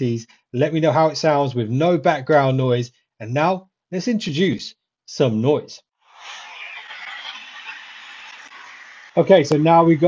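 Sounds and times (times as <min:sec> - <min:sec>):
road traffic hiss from phone: 0:06.1 - 0:09.2.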